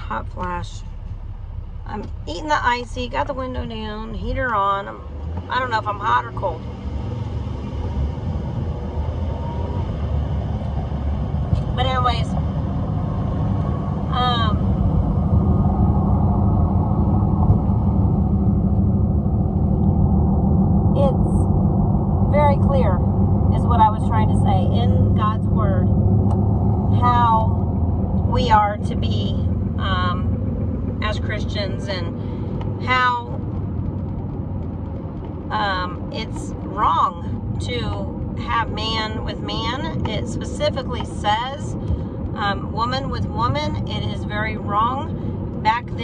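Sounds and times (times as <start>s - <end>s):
woman talking: 0.0s - 1.0s, 1.9s - 6.6s, 11.6s - 12.4s, 14.1s - 14.7s, 21.0s - 21.5s, 22.3s - 25.9s, 26.9s - 27.6s, 28.3s - 30.3s, 31.0s - 32.2s, 32.8s - 33.4s, 35.5s - 46.0s
car road and engine rumble: 0.0s - 46.0s.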